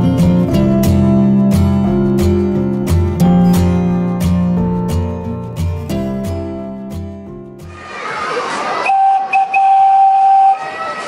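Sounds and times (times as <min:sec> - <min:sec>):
acoustic guitar music: 0:00.0 - 0:07.8
long whistle tone: 0:08.8 - 0:11.0.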